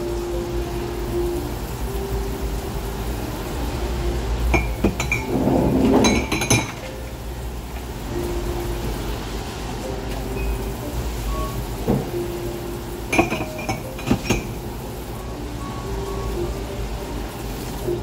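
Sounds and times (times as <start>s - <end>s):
running faucet water: 0.0s - 18.0s
ceramic mugs clinking: 4.5s - 6.8s, 13.1s - 14.6s.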